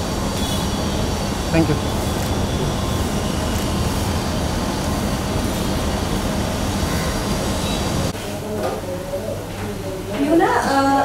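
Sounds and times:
loud rumbling with low hum: 0.0 - 8.1.

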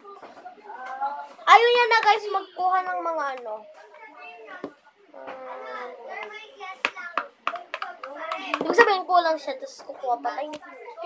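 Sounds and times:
child's voice: 0.8 - 7.3.

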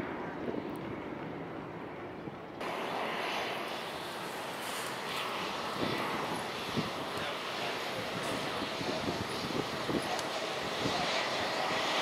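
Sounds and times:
jet engine climbing: 0.0 - 12.0
hissy jet on runway: 2.6 - 12.0.

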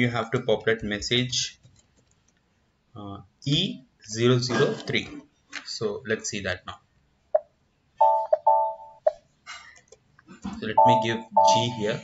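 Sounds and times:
electronic chime tones: 8.0 - 9.1, 10.8 - 12.0.

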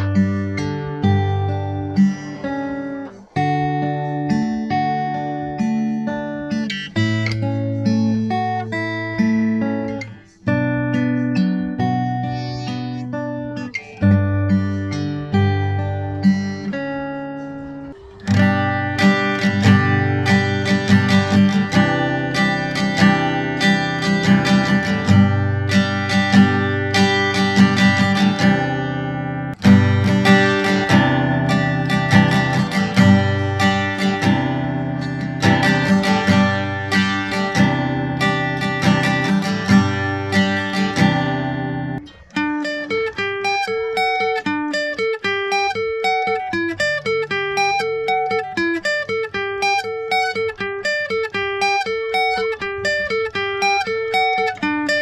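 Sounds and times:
acoustic guitar strummed chords: 0.0 - 55.0
fingerpicked guitar arpeggio: 0.0 - 55.0.

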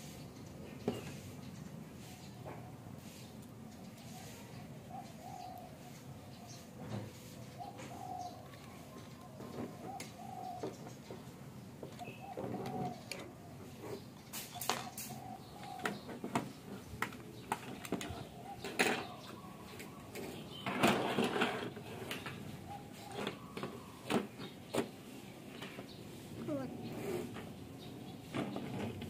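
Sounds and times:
dove cooing: 4.1 - 6.2, 6.9 - 16.8, 17.9 - 20.5, 21.8 - 24.2, 26.3 - 27.4.

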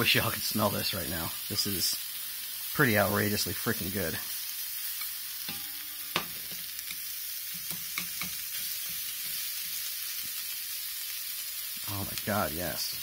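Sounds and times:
meat sizzling in a frying pan: 0.0 - 13.0.

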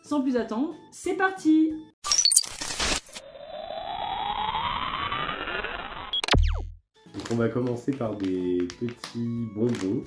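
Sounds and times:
synthesized tones sweeping: 3.0 - 6.8
deep bass hit with zap: 6.2 - 6.8.

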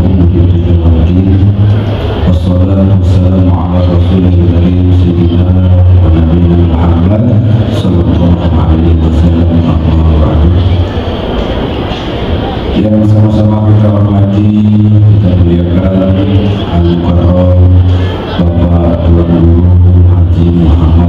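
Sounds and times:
man chanting through microphone: 0.0 - 11.2, 12.4 - 21.0.

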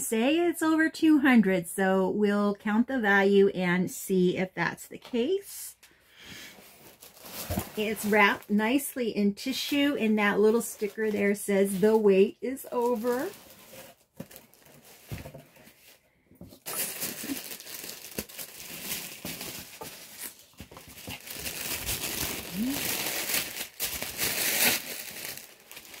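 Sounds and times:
tissue paper crinkling: 6.6 - 8.6, 9.4 - 26.0.

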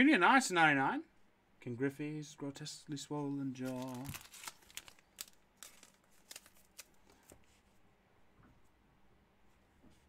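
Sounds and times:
cards rustling and tapping: 3.6 - 7.6.

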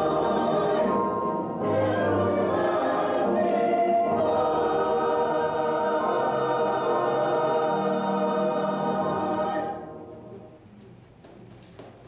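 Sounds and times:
choir singing sustained chords: 0.0 - 10.6.

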